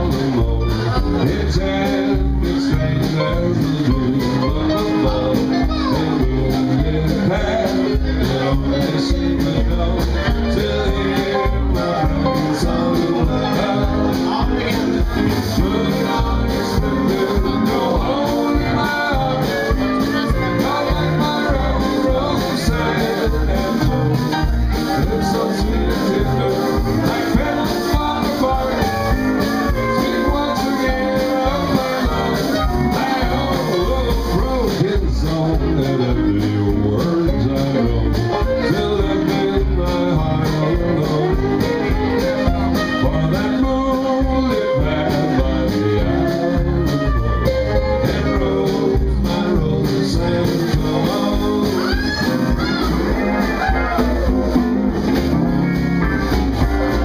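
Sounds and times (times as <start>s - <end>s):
electric and acoustic guitars: 0.0s - 57.0s
steady drum beat: 0.0s - 57.0s
western swing band playing: 0.0s - 57.0s
fiddle with sliding notes: 4.3s - 34.7s, 38.1s - 48.6s, 51.1s - 57.0s.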